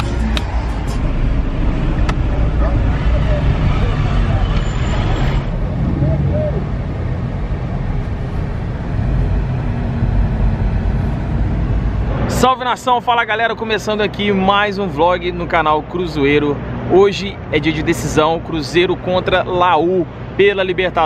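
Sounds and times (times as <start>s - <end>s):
car engine and road rumble: 0.0s - 21.0s
people's voices outside: 1.8s - 8.0s.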